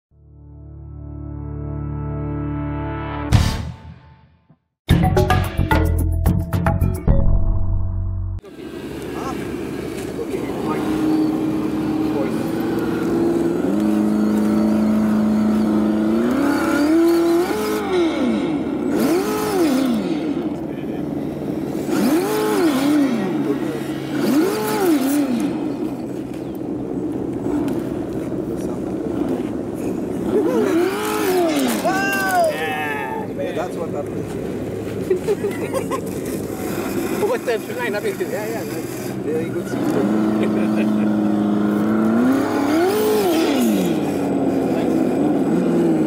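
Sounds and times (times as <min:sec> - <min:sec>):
electric motor and gears whining: 0:08.4 - 0:32.7, 0:36.4 - 0:46.0.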